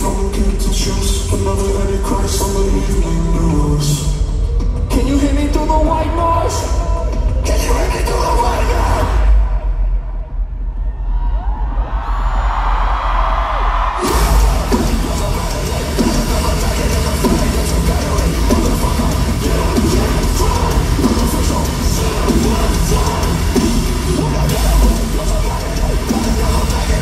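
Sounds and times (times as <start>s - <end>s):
live metal band playing: 14.0s - 27.0s.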